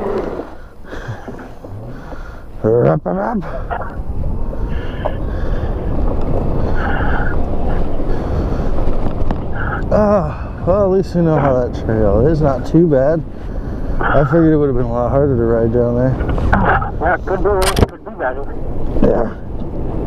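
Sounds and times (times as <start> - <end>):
wind rushing over microphone: 0.0 - 20.0.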